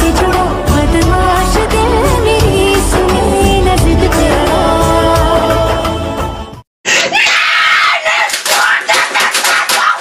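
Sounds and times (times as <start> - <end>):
pop song: 0.0 - 6.6
boy screaming: 6.9 - 10.0.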